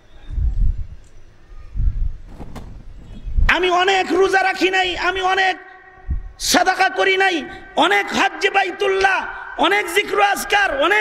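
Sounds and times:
muffled low thumps: 1.8s - 3.5s.

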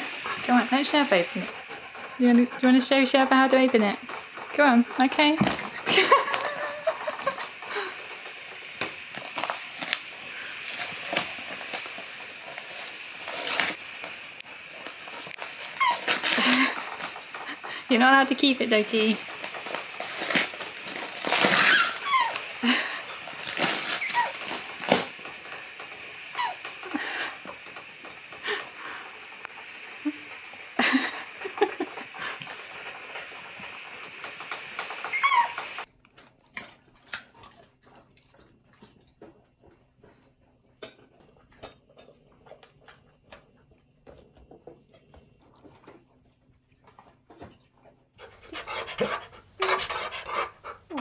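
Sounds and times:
dog tearing wrapping paper: 5.1s - 17.4s, 18.2s - 26.7s
high squeaks: 35.1s - 35.8s.

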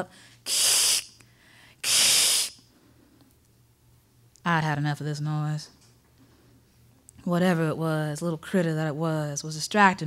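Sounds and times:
woman hissing into microphone: 0.4s - 1.2s, 1.8s - 2.6s.

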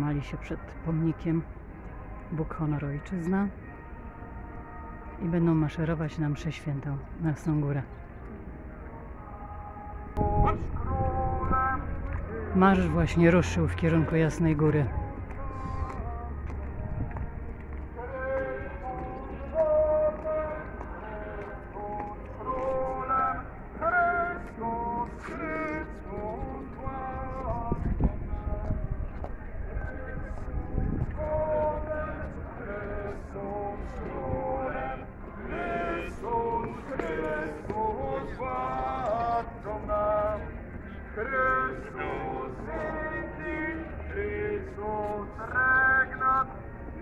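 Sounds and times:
marchers singing together: 18.0s - 28.8s, 29.8s - 46.4s.

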